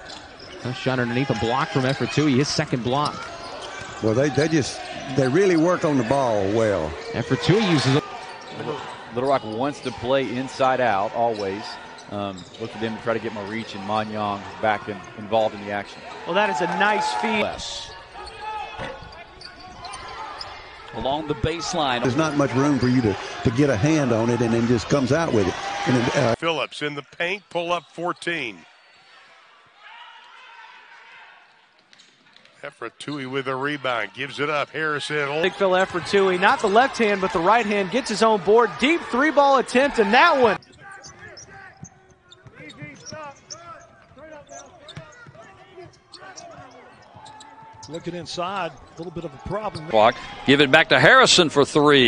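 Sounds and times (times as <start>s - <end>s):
sneakers squeaking: 0.0s - 23.9s, 35.3s - 50.5s.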